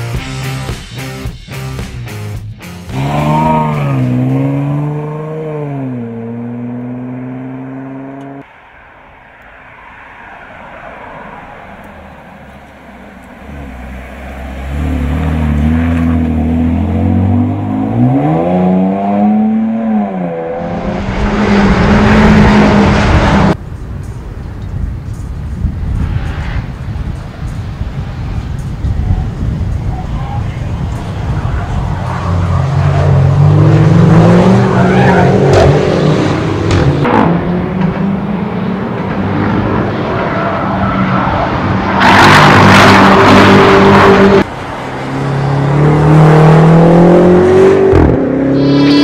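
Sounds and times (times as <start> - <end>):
car engine accelerating: 2.7 - 8.5, 11.0 - 23.6, 27.6 - 40.2, 40.8 - 49.0
tyre and wind noise: 21.1 - 44.5.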